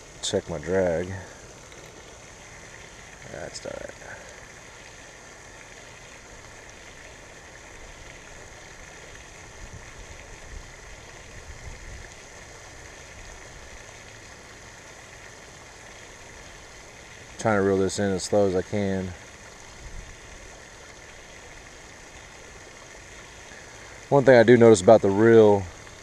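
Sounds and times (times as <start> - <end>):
fountain spray hissing: 0.0 - 26.0.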